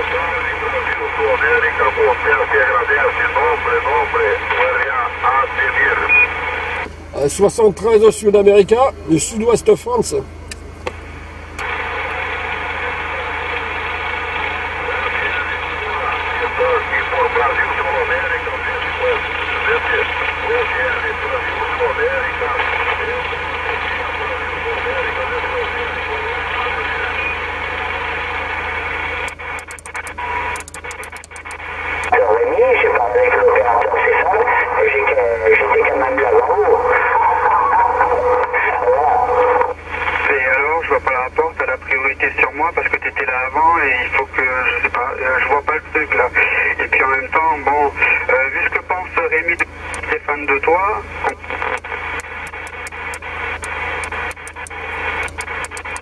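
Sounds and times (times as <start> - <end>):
radio hiss: 0.0 - 10.2, 11.6 - 56.0
garbled radio voices: 0.0 - 10.3, 14.5 - 28.2, 29.0 - 56.0
radio clicks: 29.2 - 32.2, 49.5 - 50.2, 51.2 - 56.0.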